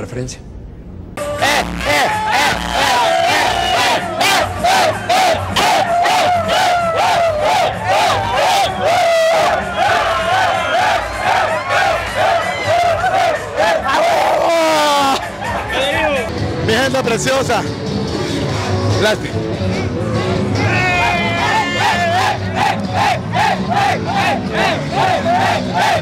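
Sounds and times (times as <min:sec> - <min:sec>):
crowd chanting rhythmically: 0:01.2 - 0:14.4, 0:21.0 - 0:26.0
long falling shout: 0:01.4 - 0:15.3, 0:20.6 - 0:22.6.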